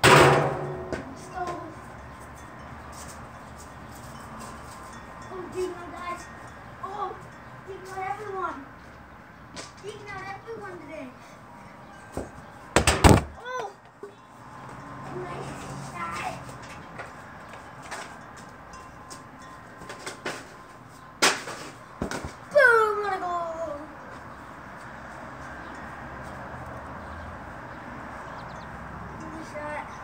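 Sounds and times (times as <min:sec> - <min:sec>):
loud sharp knocks: 0:00.0 - 0:01.1, 0:12.2 - 0:13.4
child calling and shouting: 0:00.9 - 0:02.0, 0:05.2 - 0:08.8, 0:09.7 - 0:11.4, 0:13.3 - 0:14.4, 0:15.0 - 0:16.6, 0:22.5 - 0:24.1, 0:29.1 - 0:30.0.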